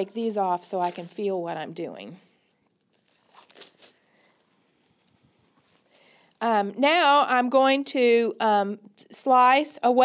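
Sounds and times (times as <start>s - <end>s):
gloves rustling: 0.0s - 6.5s.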